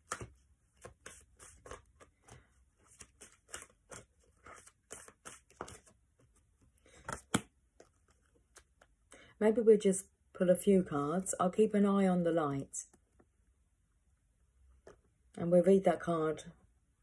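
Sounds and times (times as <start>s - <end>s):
cards rustling and clicking: 0.0s - 9.0s.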